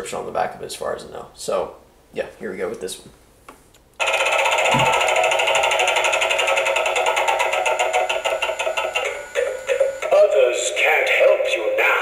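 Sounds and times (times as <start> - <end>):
rapid buzzing rattle of spinning wheel: 4.0 - 10.3.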